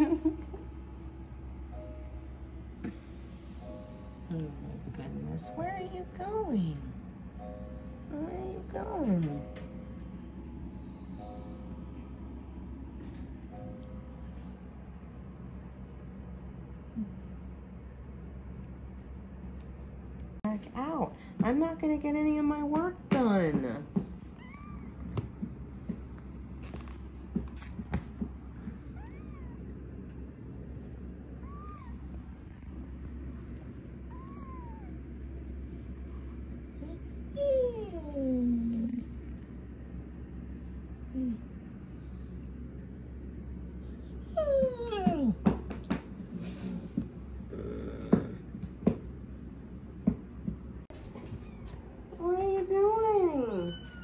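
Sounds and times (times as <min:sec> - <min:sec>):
kitten mewing: 0:29.0 - 0:29.7, 0:34.1 - 0:35.0.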